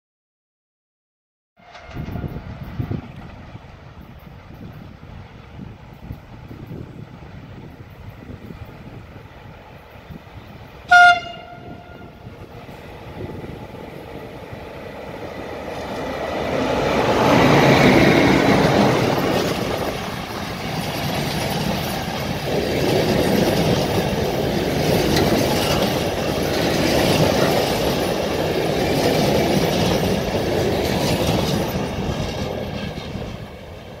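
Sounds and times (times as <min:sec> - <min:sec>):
train horn blast: 0:10.9 - 0:12.2
train wheels clattering over rails: 0:12.4 - 0:34.0.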